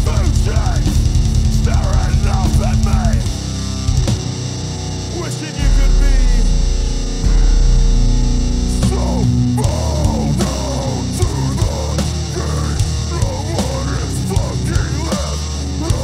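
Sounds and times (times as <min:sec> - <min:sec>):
metalcore band playing live: 0:00.0 - 0:16.0
low guitar chord ringing out: 0:05.7 - 0:10.3
cymbal and snare hits: 0:05.9 - 0:09.5.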